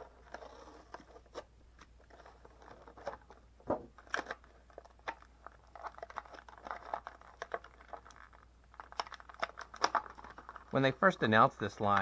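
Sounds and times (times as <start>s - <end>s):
plastic blister tray crackling: 2.1s - 12.0s.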